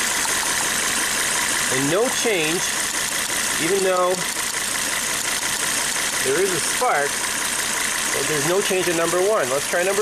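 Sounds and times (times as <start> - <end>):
engine running rough with misfire: 0.0 - 10.0.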